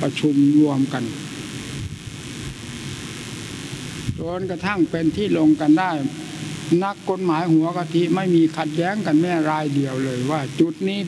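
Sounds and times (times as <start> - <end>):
faint hiss: 0.0 - 11.0
low room noise rumble: 0.0 - 11.0.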